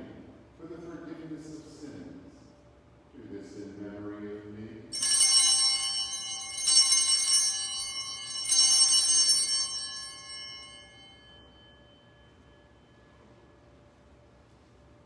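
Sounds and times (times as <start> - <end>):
altar bells ringing: 4.9 - 14.3.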